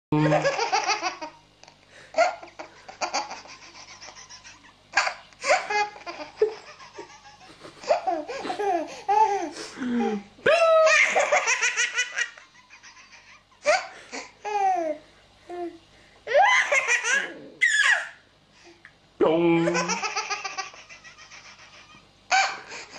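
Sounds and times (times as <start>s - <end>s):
baby laughing: 0.3s - 1.4s, 2.2s - 10.2s, 10.8s - 15.0s, 16.3s - 18.2s, 19.6s - 22.9s.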